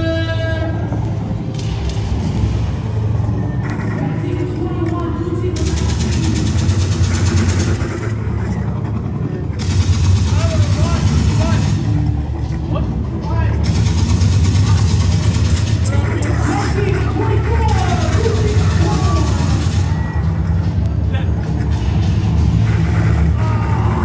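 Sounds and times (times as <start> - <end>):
low motor hum: 0.6 - 24.0.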